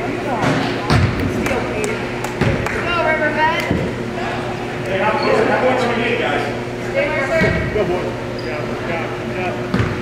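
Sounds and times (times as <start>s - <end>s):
voices echoing: 0.0s - 10.0s
basketball bouncing on hardwood floor: 9.7s - 10.0s.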